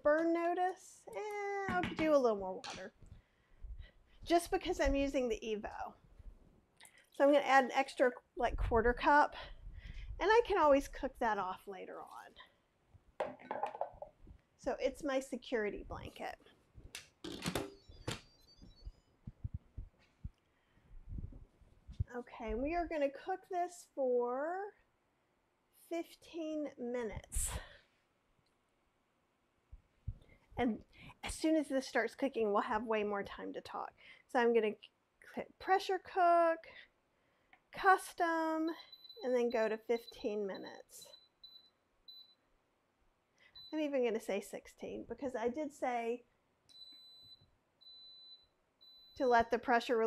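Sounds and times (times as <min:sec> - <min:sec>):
high electronic beeps: 0:17.7 - 0:19.1, 0:38.8 - 0:42.4, 0:46.7 - 0:49.2.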